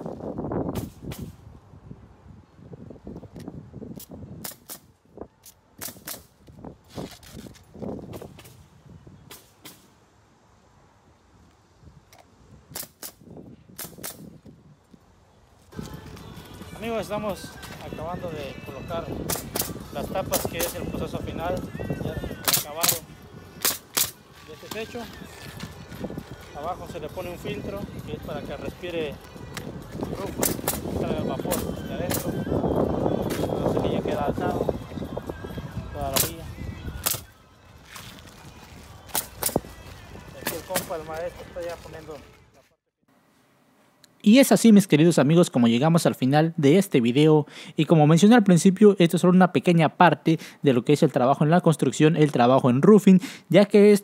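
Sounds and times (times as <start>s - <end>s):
nail gun shots: 0.7s - 1.4s, 4.0s - 4.9s, 5.8s - 6.4s, 9.3s - 9.9s, 12.7s - 13.2s, 13.8s - 14.3s, 19.3s - 19.8s, 22.4s - 23.0s, 23.6s - 24.2s, 30.4s - 30.9s, 37.0s - 37.3s, 39.1s - 39.6s.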